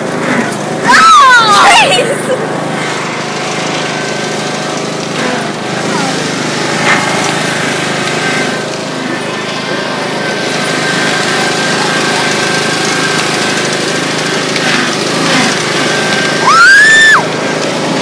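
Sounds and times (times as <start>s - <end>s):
riding lawn mower engine running: 0.0s - 18.0s.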